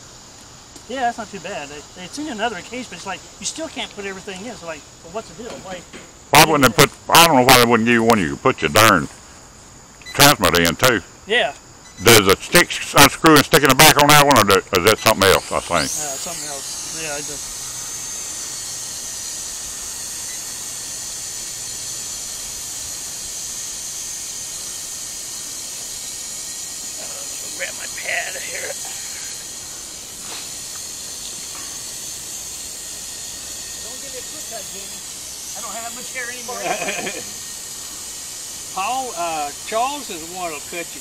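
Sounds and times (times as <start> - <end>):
drone propellers whining: 11.8 - 41.0.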